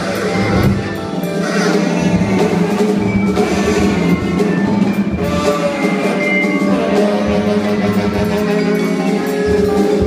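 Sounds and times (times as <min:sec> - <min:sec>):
drum kit with cymbals: 0:00.0 - 0:10.0
vibraphone notes: 0:00.0 - 0:10.0.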